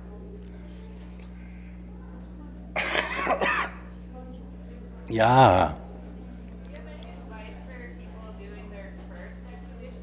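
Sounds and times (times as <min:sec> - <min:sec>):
low electrical hum: 0:00.0 - 0:10.0
person coughing: 0:02.8 - 0:03.9.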